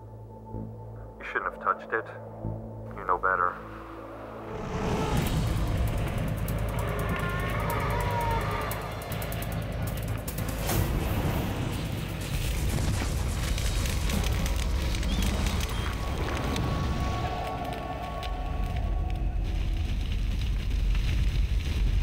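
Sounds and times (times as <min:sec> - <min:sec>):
dramatic music score: 0:00.0 - 0:22.0
flamethrower firing: 0:04.6 - 0:22.0.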